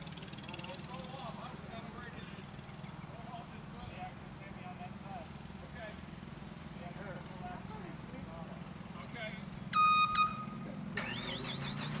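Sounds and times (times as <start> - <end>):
horn beeping: 9.7 - 12.0
heavy machine engine idling: 10.4 - 12.0.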